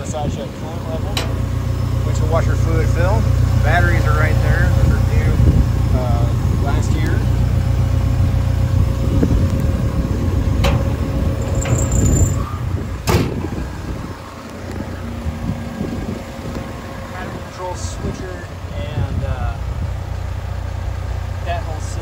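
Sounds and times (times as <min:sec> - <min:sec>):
diesel engine idling: 0:00.0 - 0:22.0.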